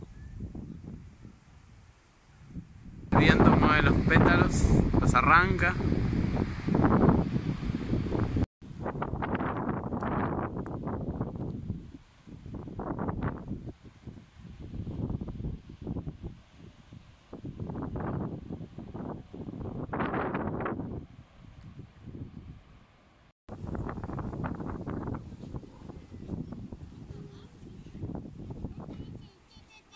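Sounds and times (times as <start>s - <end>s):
gusty wind buffeting microphone: 0.0s - 29.9s
trees rustling: 0.0s - 29.9s.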